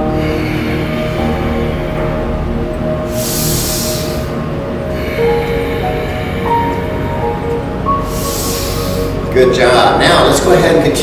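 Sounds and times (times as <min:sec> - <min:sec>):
deep breath drawn in: 0:00.0 - 0:09.3
soft background music: 0:00.0 - 0:11.0
strong hiss: 0:03.0 - 0:06.9, 0:07.9 - 0:09.4.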